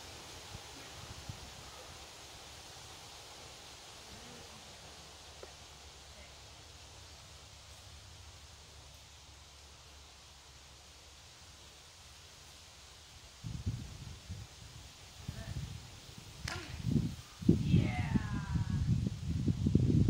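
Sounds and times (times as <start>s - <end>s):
low hiss and rumble: 0.0s - 20.0s.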